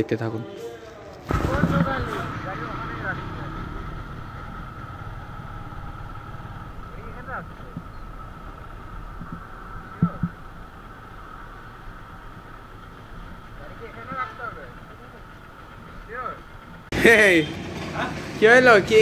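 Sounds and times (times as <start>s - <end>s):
motorcycle engine running: 1.3s - 19.0s.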